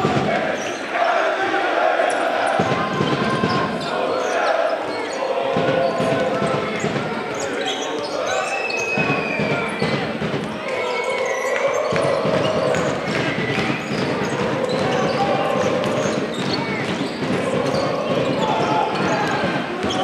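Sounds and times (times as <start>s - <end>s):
voices: 0.0s - 20.0s
sneaker squeaks: 2.6s - 20.0s.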